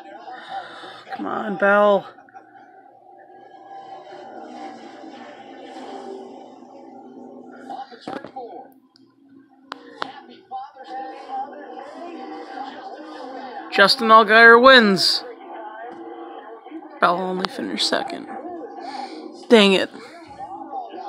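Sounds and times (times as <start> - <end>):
commentators talking on tv: 0.0 - 21.0.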